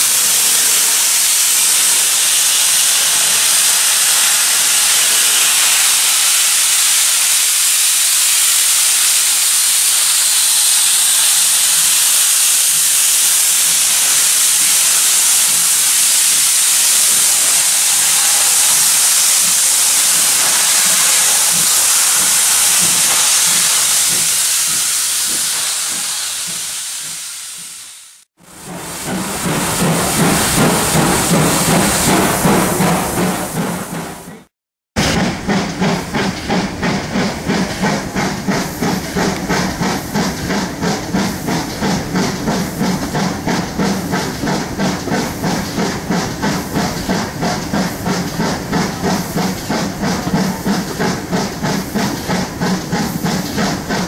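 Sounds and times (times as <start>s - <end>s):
steam hissing from locomotive: 0.0s - 54.0s.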